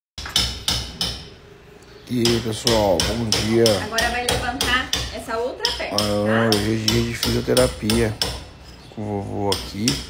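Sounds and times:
sharp ringing knocks: 0.2s - 1.3s, 2.2s - 8.8s.

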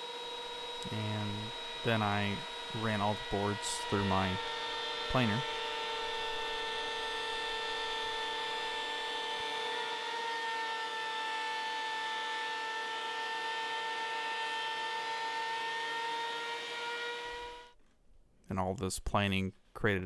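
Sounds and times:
thickness planer running: 0.0s - 17.8s.

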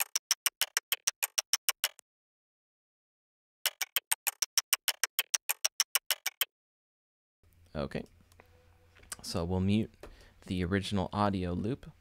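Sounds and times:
fast clicky percussion loop: 0.0s - 2.0s, 3.6s - 6.5s.

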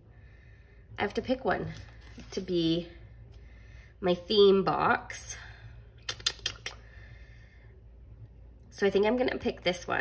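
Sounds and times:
paper rustle: 1.6s - 2.5s.

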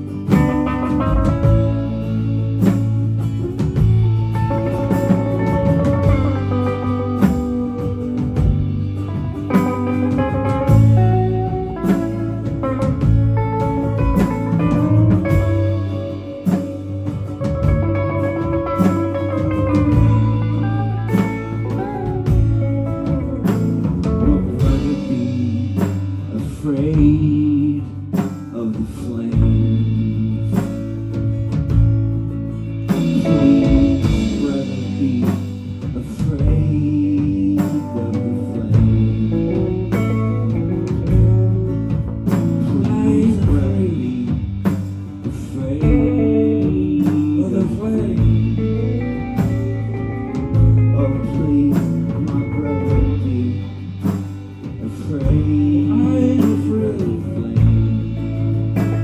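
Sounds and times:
drum kit: 0.0s - 59.0s
electric guitars: 0.0s - 59.0s.

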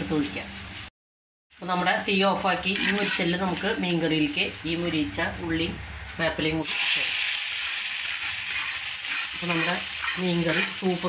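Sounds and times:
onions sizzling in oil: 1.5s - 11.0s
spatula scraping clay pot: 2.7s - 3.4s, 8.5s - 10.8s.

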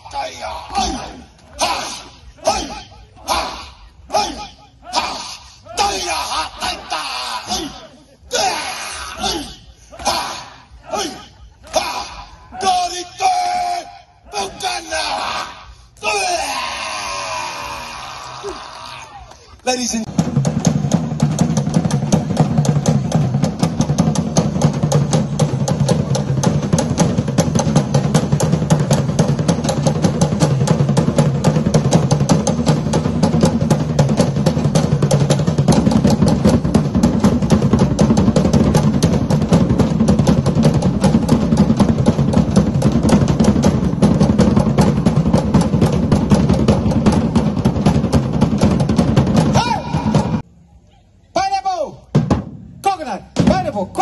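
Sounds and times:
fast percussion drumming: 20.0s - 50.4s.

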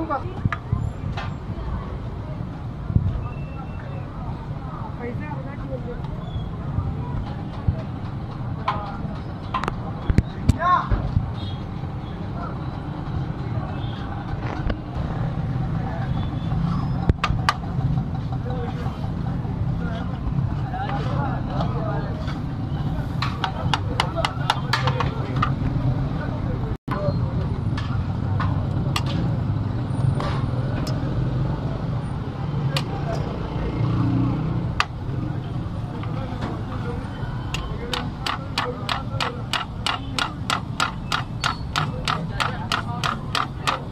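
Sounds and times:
low street rumble: 0.0s - 43.9s
voices: 0.0s - 43.9s
metal spatula clacking on griddle: 37.5s - 43.9s.

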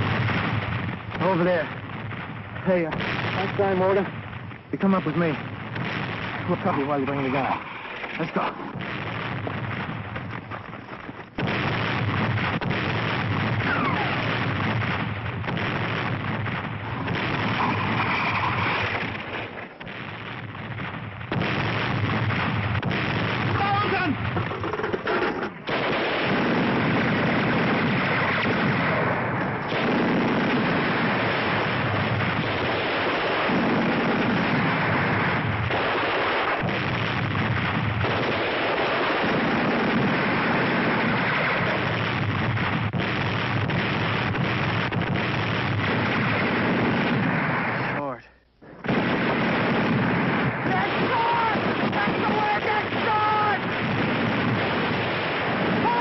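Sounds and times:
machine gun and rifle fire: 0.0s - 48.0s, 48.8s - 56.0s.

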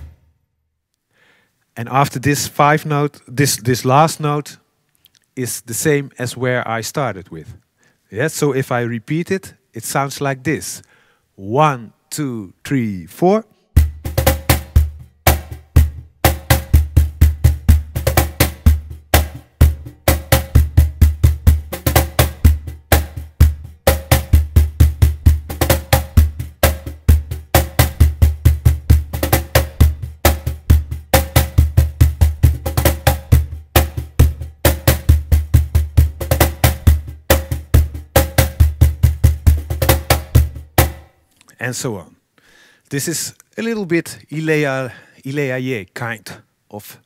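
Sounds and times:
cajon played by hand: 13.8s - 41.1s.

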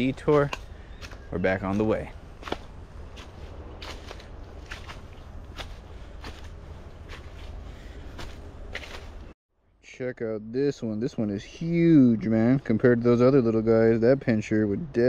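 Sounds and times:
footsteps crunching on dirt: 0.0s - 9.4s
low rumble: 2.0s - 9.4s.

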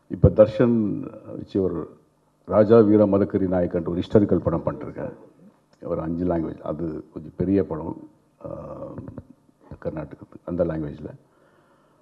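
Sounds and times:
man talking into microphone: 0.1s - 11.2s
man hesitation sound: 4.1s - 5.5s.

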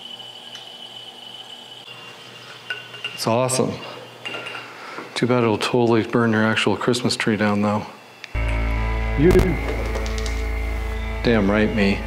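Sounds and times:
high-pitched electrical whine: 0.0s - 12.0s.

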